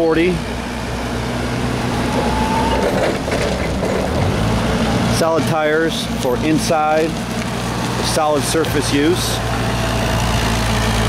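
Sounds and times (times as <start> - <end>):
forklift engine running: 0.0 - 11.0.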